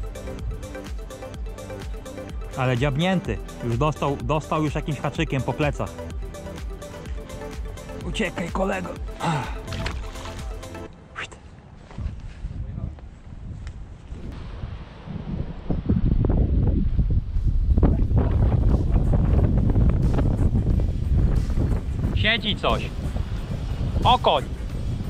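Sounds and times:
wind buffeting microphone: 11.7s - 25.0s.

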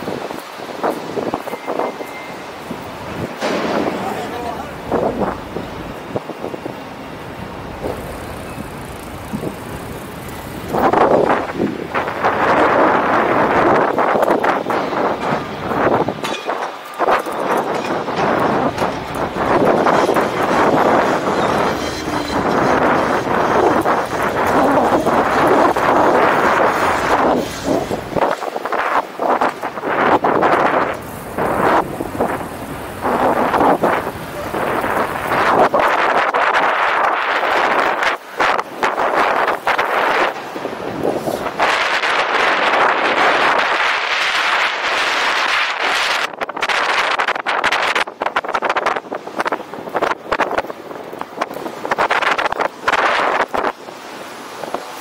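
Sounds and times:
wind and road noise: 0.0s - 55.0s
bicycle rattles and clicks: 7.6s - 53.8s.

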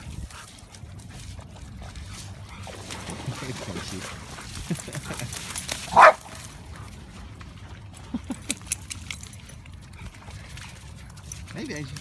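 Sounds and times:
dog barking: 5.9s - 6.2s.

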